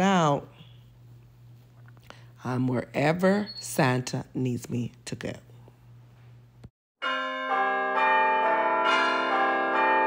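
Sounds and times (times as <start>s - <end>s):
faint room hum: 0.0s - 6.7s
bells ringing: 7.0s - 10.0s.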